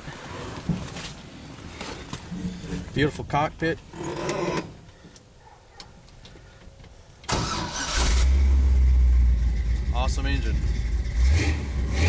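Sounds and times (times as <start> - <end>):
car engine cranking and idling: 7.2 - 12.0.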